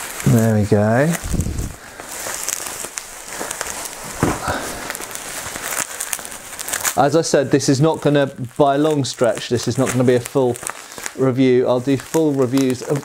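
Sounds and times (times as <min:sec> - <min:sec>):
bubble wrap crinkling: 0:00.0 - 0:13.0.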